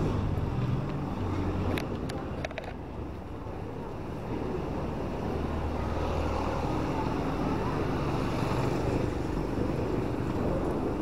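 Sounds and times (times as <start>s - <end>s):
road traffic passing: 0.0s - 11.0s.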